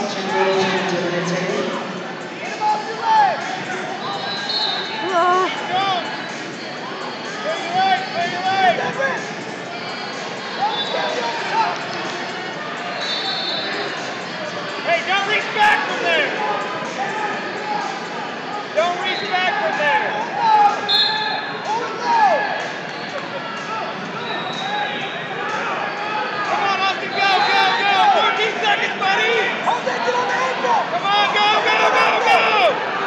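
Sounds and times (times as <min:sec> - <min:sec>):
people shouting in echoing hall: 0:14.9 - 0:33.0.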